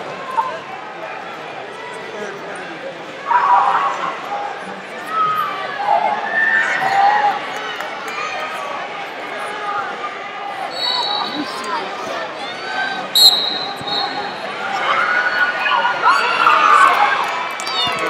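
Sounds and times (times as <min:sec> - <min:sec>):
people shouting in a hall: 0:03.1 - 0:18.0
referee whistle blasts: 0:10.7 - 0:11.4, 0:13.1 - 0:14.4.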